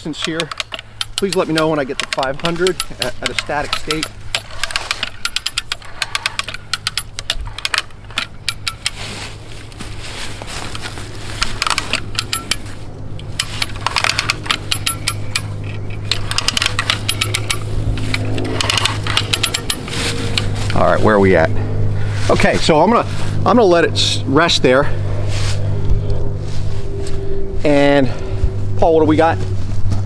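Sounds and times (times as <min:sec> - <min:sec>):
ratchet pawl clicking: 0:00.0 - 0:09.0, 0:11.4 - 0:20.8
steady low hum: 0:00.0 - 0:30.0.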